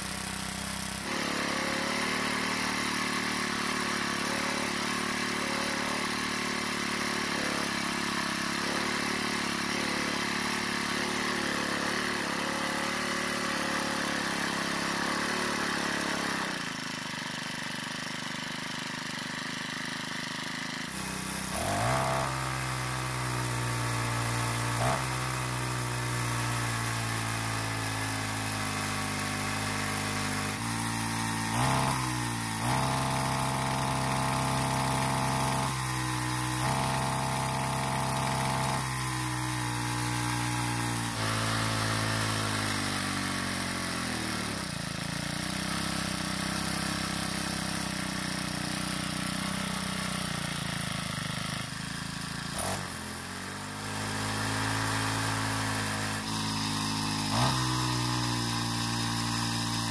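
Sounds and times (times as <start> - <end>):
small engine idling fast: 0.0 - 59.9.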